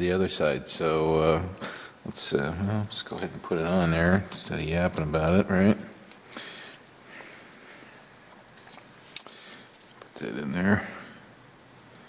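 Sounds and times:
faint handling noise: 2.8s - 10.6s.

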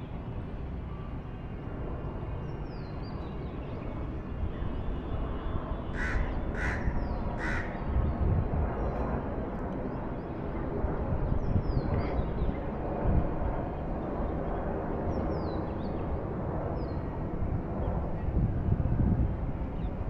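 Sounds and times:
crow cawing: 5.9s - 7.8s.

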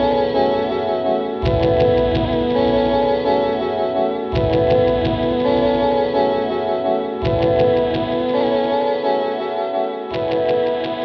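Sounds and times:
guitar loop with held notes: 0.0s - 11.0s.

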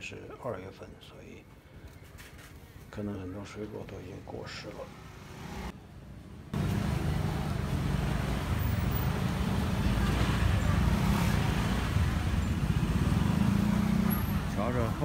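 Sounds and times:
low rumble of traffic: 0.0s - 15.0s.

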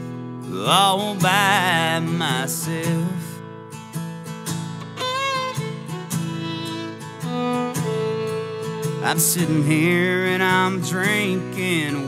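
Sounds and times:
acoustic guitar strumming chords: 0.0s - 12.0s
fiddle sustaining notes: 4.8s - 10.8s.

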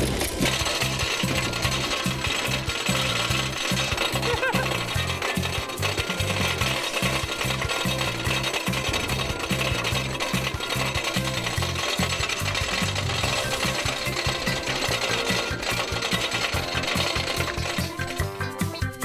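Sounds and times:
music playing: 0.0s - 19.0s
roller coaster chain clattering: 0.0s - 19.0s.

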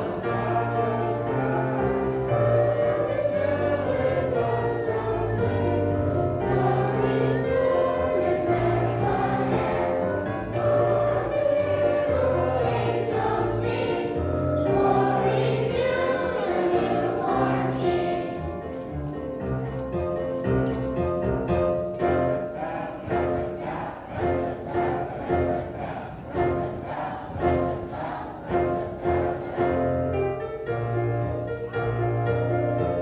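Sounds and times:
children's choir singing: 0.0s - 33.0s
instrumental accompaniment low notes: 0.0s - 33.0s.

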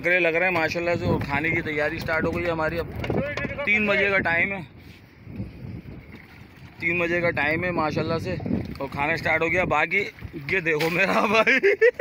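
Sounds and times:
man talking: 0.0s - 4.7s, 6.8s - 11.6s
wind and water hiss: 1.1s - 12.0s.

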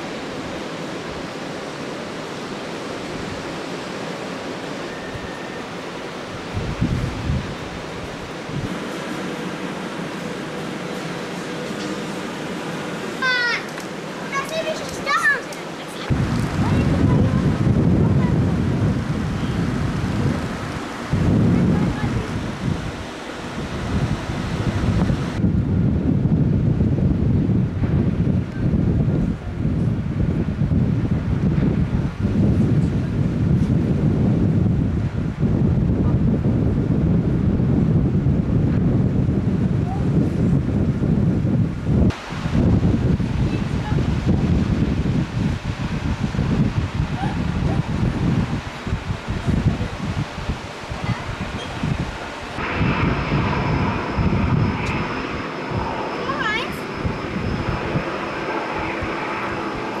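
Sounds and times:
wind rushing over microphone: 0.0s - 60.0s
steady hum with faint high tones: 51.2s - 60.0s.

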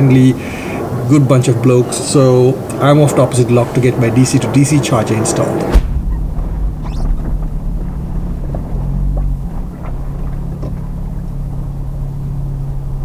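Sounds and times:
vehicle engine and road noise: 0.0s - 13.0s.

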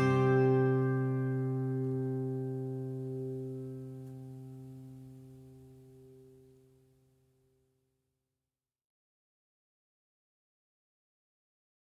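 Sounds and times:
acoustic guitar chord ringing: 0.0s - 7.0s.

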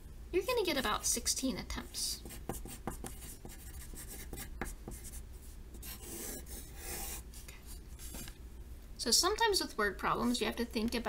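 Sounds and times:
pencil writing on paper: 2.2s - 5.2s, 5.8s - 7.2s.

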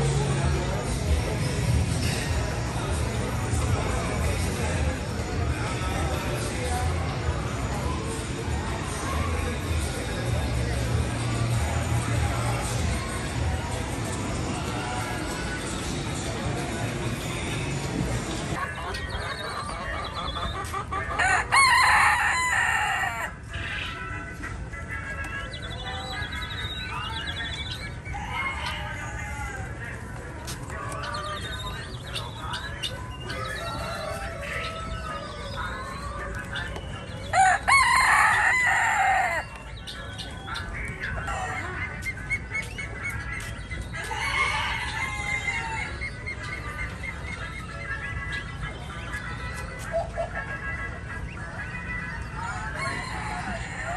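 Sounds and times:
chickens clucking: 0.0s - 53.9s
rooster crowing: 21.2s - 23.3s, 37.3s - 39.4s, 44.1s - 46.0s.

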